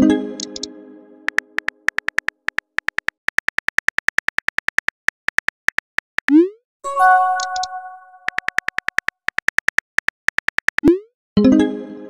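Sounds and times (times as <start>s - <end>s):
phone keyboard key clicks: 1.3s - 6.3s, 7.4s - 7.7s, 8.3s - 10.8s
multi-note chime: 6.9s - 8.2s.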